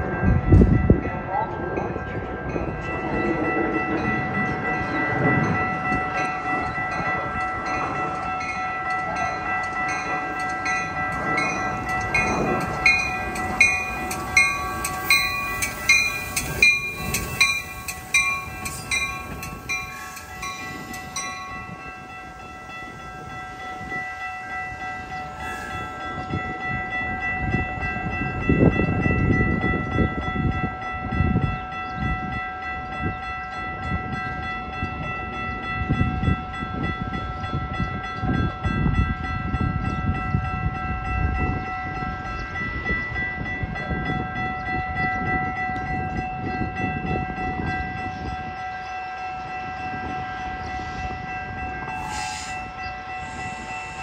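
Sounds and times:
train rumble: 0.0 - 54.0
wind gusts on microphone: 0.0 - 54.0
steady ringing: 1.9 - 36.6, 38.6 - 54.0.

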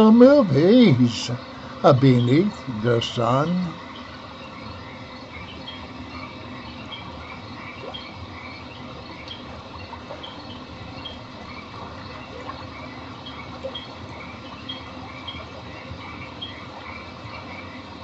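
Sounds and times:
frogs chorus: 0.0 - 18.0
insects: 0.0 - 18.0.

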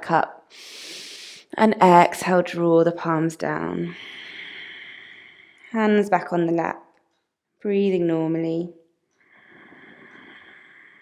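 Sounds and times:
faint long breath: 0.6 - 1.4, 4.0 - 5.7, 9.3 - 11.0.

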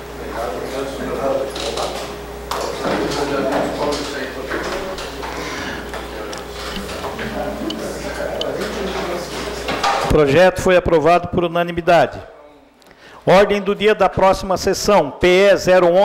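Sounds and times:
steady low hum: 0.0 - 9.8
indistinct chatter of people: 0.0 - 10.0.

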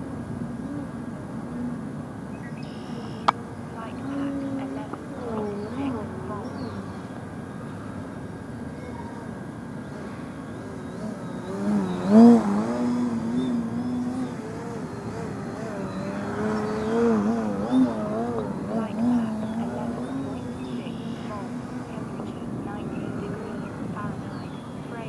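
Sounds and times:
model plane motor buzzing: 9.7 - 21.9.

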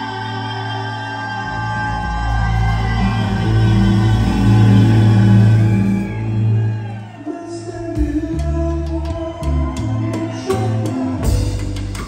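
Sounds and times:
live band sustained chord: 1.6 - 7.0.

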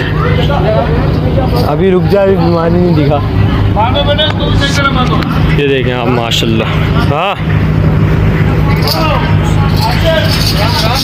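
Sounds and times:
people talking indistinctly: 0.0 - 11.0
steady low drone: 0.0 - 11.0.

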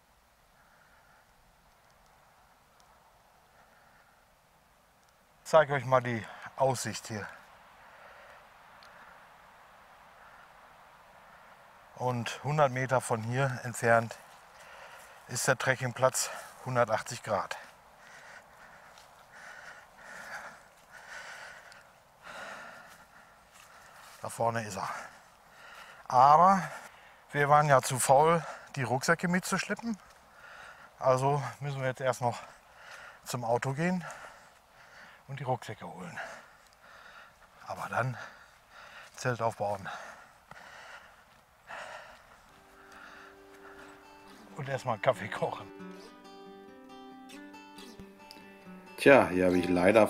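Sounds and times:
man breathing: 0.5 - 1.5, 3.5 - 4.5, 7.3 - 9.4, 10.0 - 11.8, 14.2 - 15.3, 16.2 - 16.6, 17.5 - 24.2, 24.8 - 27.3, 30.0 - 31.6, 32.4 - 33.3, 34.0 - 35.3, 36.1 - 39.2, 39.8 - 44.6
man talking: 5.4 - 7.4, 12.0 - 14.3, 15.3 - 17.7, 24.2 - 25.2, 26.1 - 30.0, 31.0 - 32.5, 33.3 - 34.2, 35.3 - 36.4, 37.6 - 38.4, 39.2 - 40.1, 44.4 - 45.8, 49.0 - 50.0
faint background music: 42.6 - 50.0.

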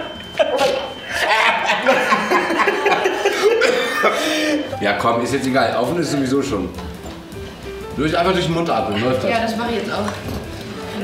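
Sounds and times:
men chuckling: 0.1 - 4.7
men coughing: 0.4 - 4.7.

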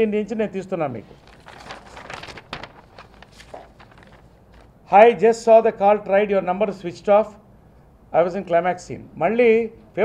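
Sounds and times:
paper rustling: 1.0 - 4.7.

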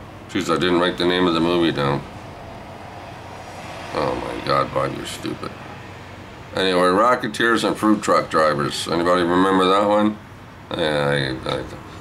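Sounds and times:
steady background rumble: 0.0 - 12.0.

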